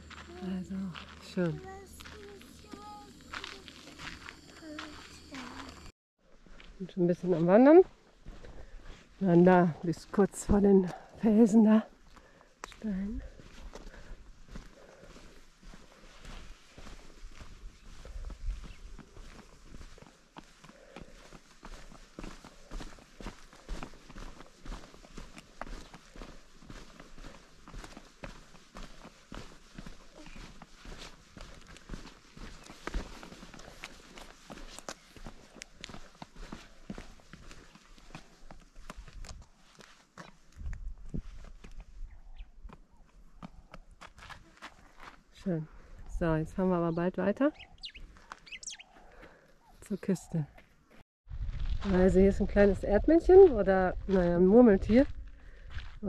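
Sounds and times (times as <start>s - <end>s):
footsteps on gravelly sand: 0.0s - 42.1s, 42.7s - 49.4s, 50.6s - 56.0s.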